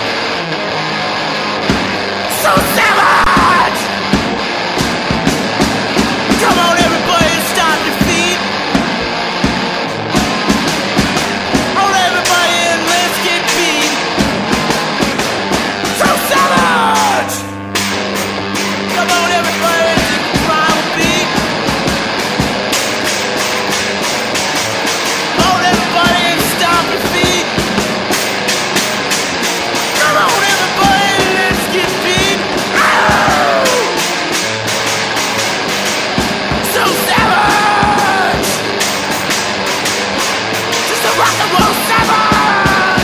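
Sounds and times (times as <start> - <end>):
electric guitar and drums: 0.0 - 43.0
singer yelling: 2.2 - 4.4, 6.2 - 8.5, 11.7 - 14.2, 15.8 - 17.6, 18.8 - 21.6, 25.3 - 27.6, 29.9 - 34.2, 36.4 - 38.8, 40.7 - 43.0.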